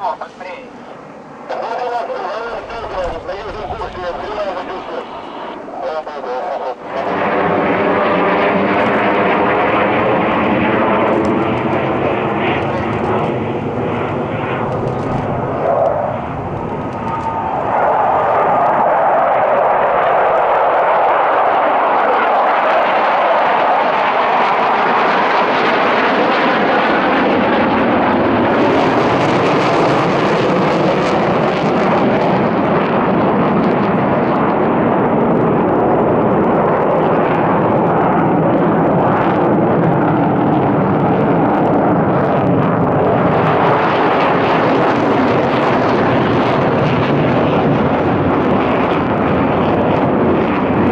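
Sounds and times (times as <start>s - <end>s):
fighter jets roaring: 0.0s - 50.9s
passenger jet whine: 0.0s - 50.9s.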